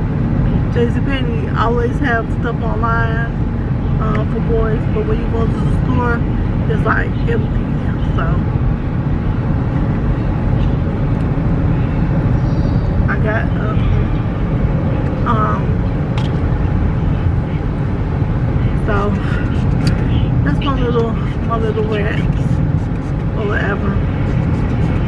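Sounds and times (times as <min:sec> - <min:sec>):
car road and engine rumble: 0:00.0 - 0:25.0
faint voices: 0:13.1 - 0:25.0.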